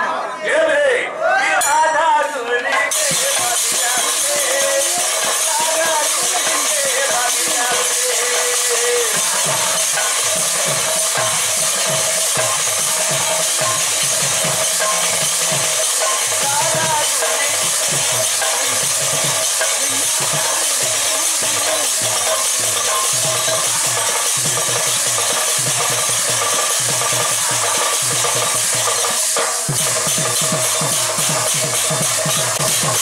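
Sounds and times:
hand cymbals clashing: 1.6s - 33.0s.

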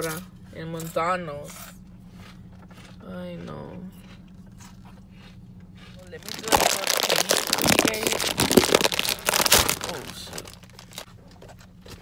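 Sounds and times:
foil bag crinkling: 6.1s - 11.1s.

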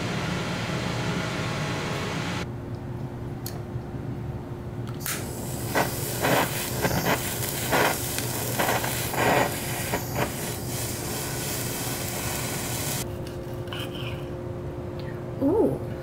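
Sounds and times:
kitchen torch hissing: 5.0s - 13.0s.

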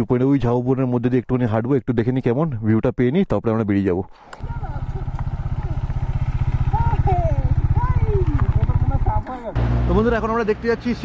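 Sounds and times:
motorcycle engine idling: 4.4s - 9.6s.

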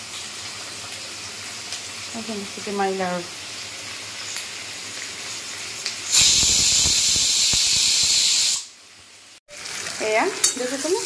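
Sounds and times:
pressure cooker whistle hissing: 6.1s - 8.8s.

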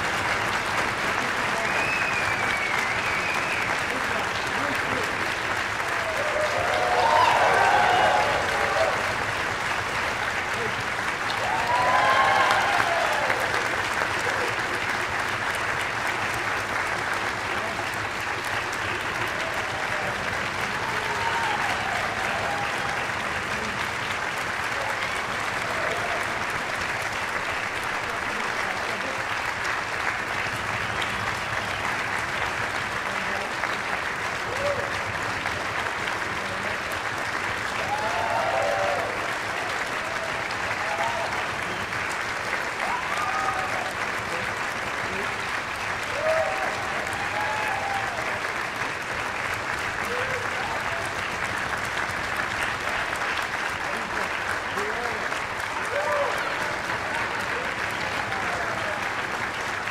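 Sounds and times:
audience applause: 0.0s - 59.9s.

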